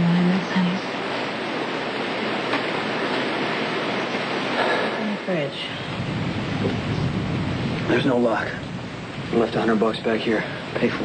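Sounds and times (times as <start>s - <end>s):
rain hissing: 0.0s - 11.0s
thunder rumbling: 0.0s - 11.0s.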